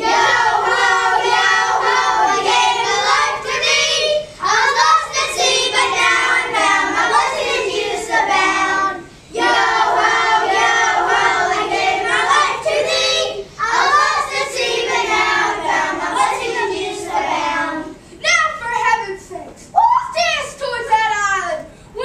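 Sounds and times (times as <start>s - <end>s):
children singing: 0.0s - 18.0s.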